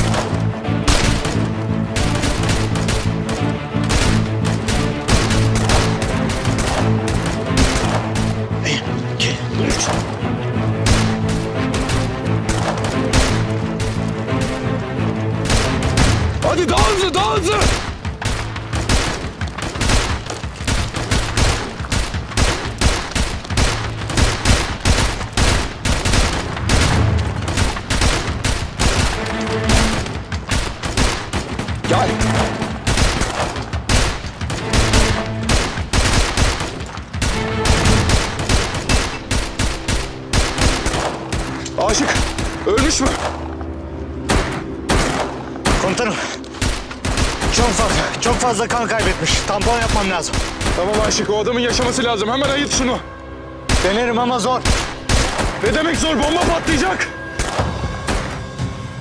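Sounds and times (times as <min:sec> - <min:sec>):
dramatic music score: 0:00.0 - 0:59.0
automatic rifle fire: 0:32.9 - 0:41.6.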